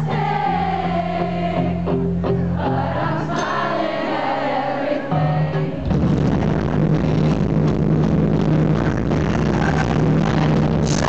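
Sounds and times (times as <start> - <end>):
pop-punk band playing live: 5.2 - 11.0.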